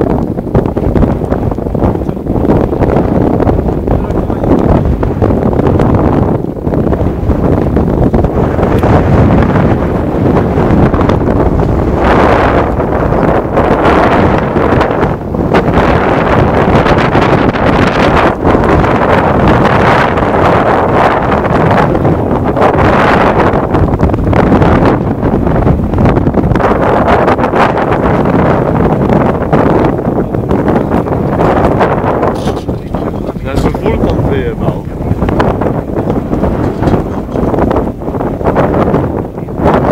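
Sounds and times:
wind buffeting microphone: 0.0 - 39.9.

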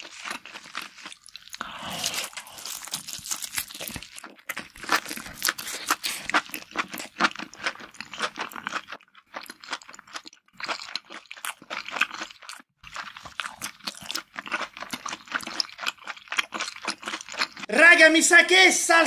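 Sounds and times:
person chewing: 0.0 - 17.7.

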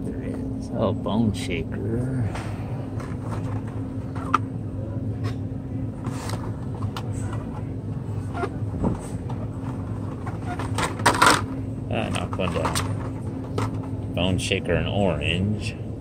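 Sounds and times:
low store hum: 0.0 - 16.0.

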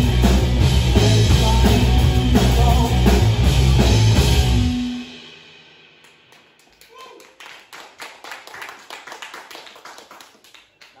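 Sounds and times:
live rock band: 0.0 - 6.5
audience clapping: 6.0 - 11.0
person calling out: 6.8 - 7.4.

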